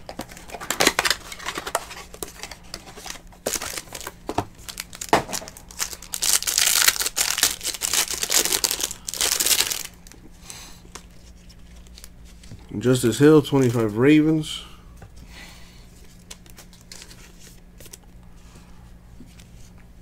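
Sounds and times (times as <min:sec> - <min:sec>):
plastic wrapper crinkling and tearing: 0:00.0 - 0:10.2, 0:16.2 - 0:18.1.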